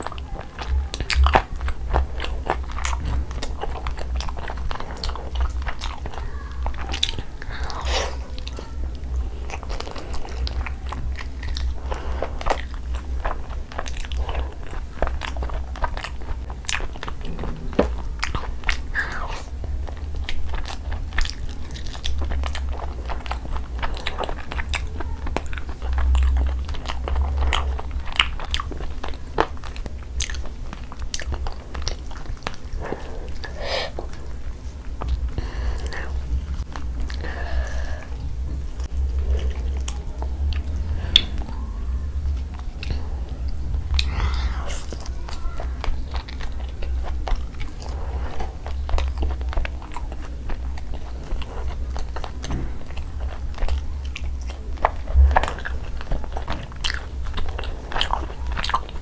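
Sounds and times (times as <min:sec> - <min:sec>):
wet chewing clicks and smacks: 0:00.0 - 0:37.3, 0:38.5 - 0:41.6, 0:42.3 - 0:59.0.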